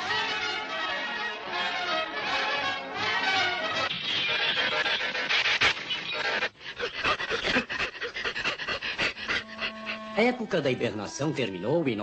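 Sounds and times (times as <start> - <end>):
quick panting breaths: 4.5 - 10.2
held musical note: 9.4 - 12.0.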